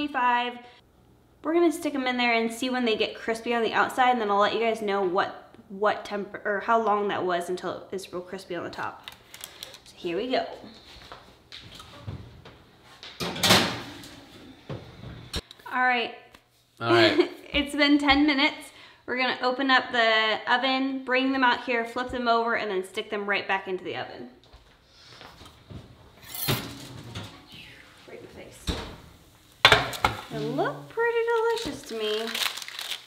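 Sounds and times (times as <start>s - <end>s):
oven door and metal pan clatter: 13.2s - 14.2s, 26.2s - 27.5s.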